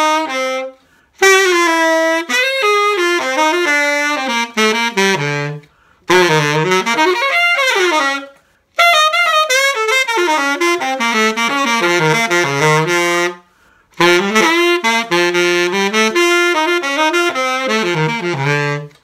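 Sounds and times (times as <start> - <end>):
tenor saxophone playing: 0.0 - 19.0.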